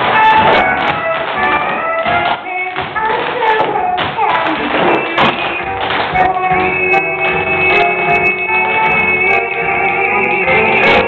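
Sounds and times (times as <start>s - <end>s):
tap shoes on stage floor: 0.0s - 8.2s
loud music: 0.0s - 11.0s.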